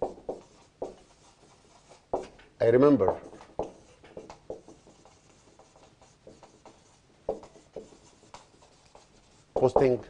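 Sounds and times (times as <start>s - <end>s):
marker squeaking on whiteboard: 0.0s - 10.0s.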